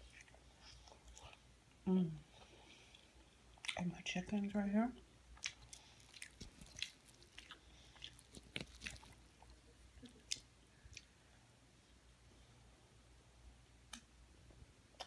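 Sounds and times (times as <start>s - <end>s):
faint chewing: 0.0s - 3.9s, 5.3s - 11.2s.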